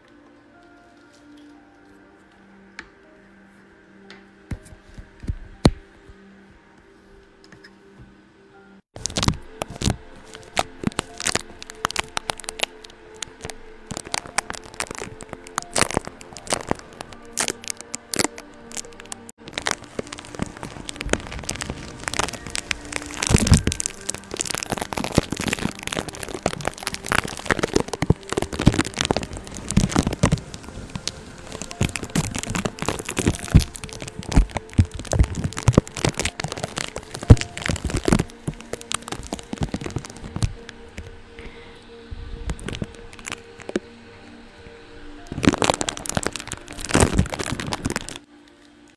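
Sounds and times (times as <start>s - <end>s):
brush crackling on microphone: 9.0s - 41.6s, 42.3s - 44.5s, 45.2s - 48.3s.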